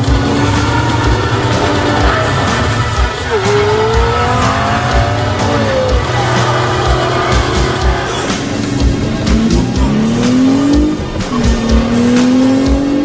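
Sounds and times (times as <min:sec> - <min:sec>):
tyres squealing: 0:00.0 - 0:12.3
engines revving: 0:00.0 - 0:13.0
music with low beat: 0:00.0 - 0:13.0.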